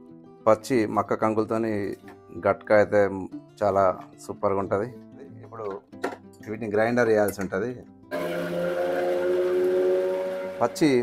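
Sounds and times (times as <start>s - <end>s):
mixer-grinder motor whine: 8.1s - 11.0s.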